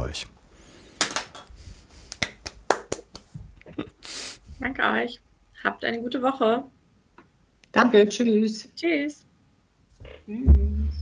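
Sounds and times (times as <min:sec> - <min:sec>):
hand claps over call audio: 0:01.0 - 0:03.4.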